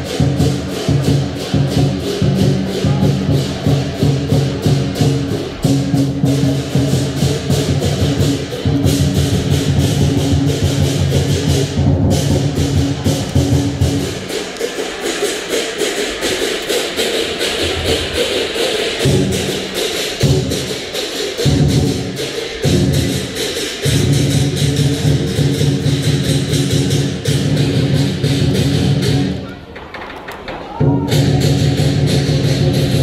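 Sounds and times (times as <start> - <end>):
cymbals crashing rapidly: 0.0 - 29.5, 30.6 - 33.0
deep drum beating: 0.0 - 29.5, 30.7 - 33.0.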